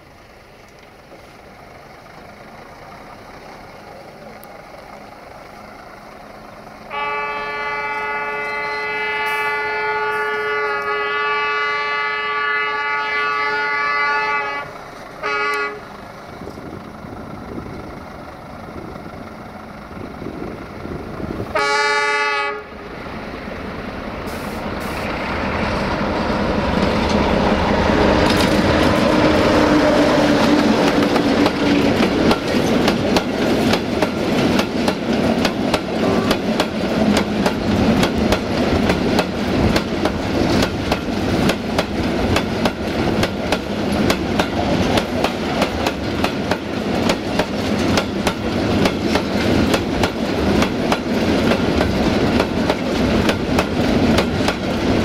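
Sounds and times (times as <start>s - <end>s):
diesel engine rumble: 0.0s - 55.0s
locomotive horn blasts: 6.9s - 16.0s, 21.5s - 22.8s, 36.0s - 36.5s
freight wagon wheels: 24.8s - 55.0s.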